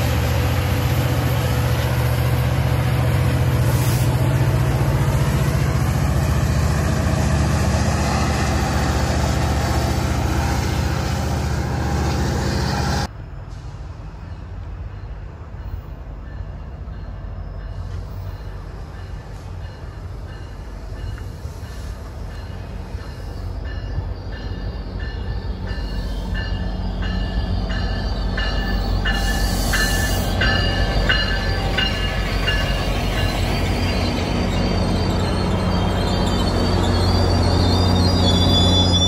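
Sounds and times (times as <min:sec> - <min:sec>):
diesel locomotive engine rumble: 0:00.0 - 0:39.0
train coaches rolling by: 0:00.0 - 0:39.0
train bell ringing: 0:14.2 - 0:39.0.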